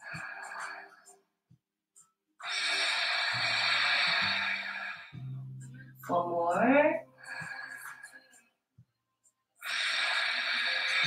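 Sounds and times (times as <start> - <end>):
long breathy exhale: 2.4 - 5.2, 9.6 - 11.0.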